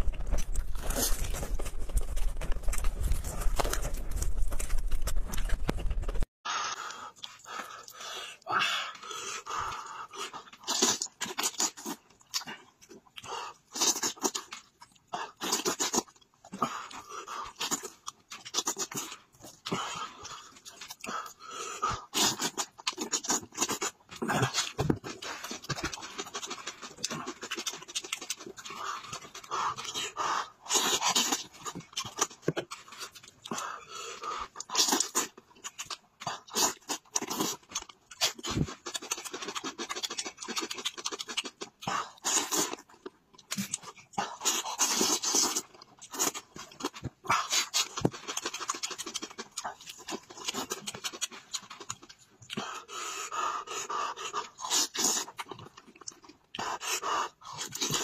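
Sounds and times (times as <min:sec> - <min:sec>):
man chewing meat: 0:00.0 - 0:58.0
heavy mouth breathing: 0:52.5 - 0:55.4.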